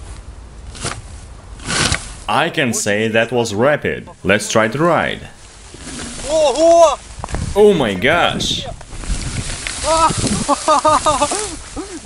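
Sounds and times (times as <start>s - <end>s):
grass and reeds brushing sled: 0.0s - 12.0s
man's short excited cries: 6.2s - 7.0s, 9.8s - 12.0s
man laughing: 9.8s - 12.0s.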